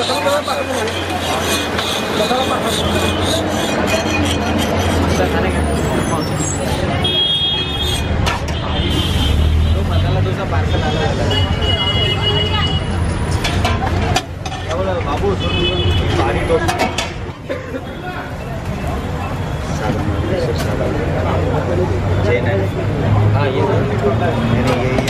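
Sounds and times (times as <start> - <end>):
people talking: 0.0 - 4.2, 5.0 - 7.2
road traffic: 0.0 - 25.0.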